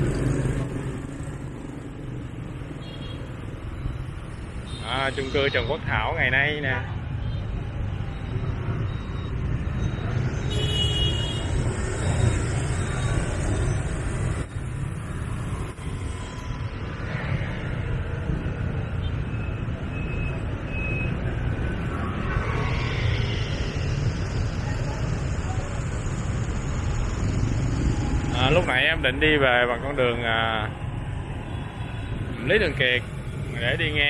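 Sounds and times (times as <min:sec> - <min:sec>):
motorbike engines rumbling: 0:00.0 - 0:34.0
tyres and wind: 0:00.0 - 0:34.0.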